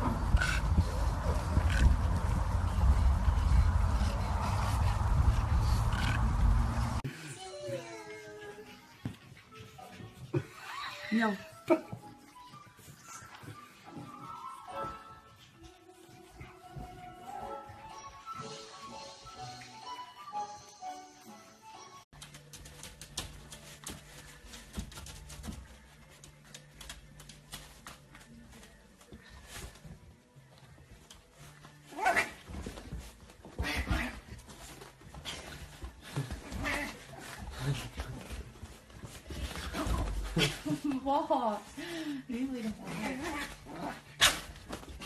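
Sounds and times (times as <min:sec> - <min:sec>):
background music: 0:05.9 - 0:45.0.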